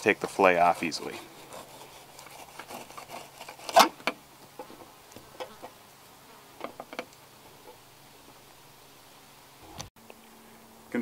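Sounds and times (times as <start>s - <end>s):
knife scraping fish skin: 0.7s - 3.9s
faint steady buzz: 1.2s - 11.0s.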